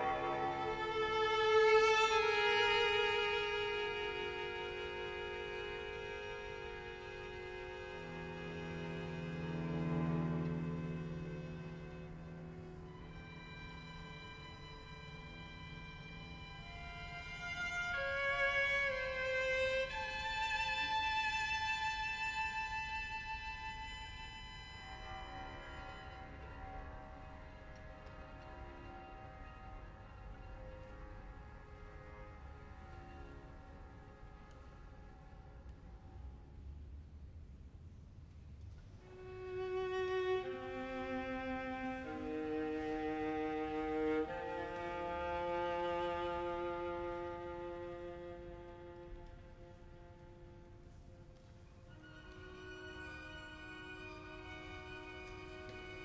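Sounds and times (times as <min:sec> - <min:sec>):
string quartet playing: 0:00.0 - 0:35.8, 0:38.7 - 0:56.0.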